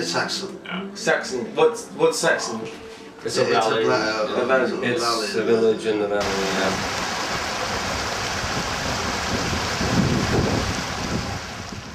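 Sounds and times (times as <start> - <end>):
stream water rushing: 6.2 - 11.9
wind buffeting microphone: 6.2 - 11.9.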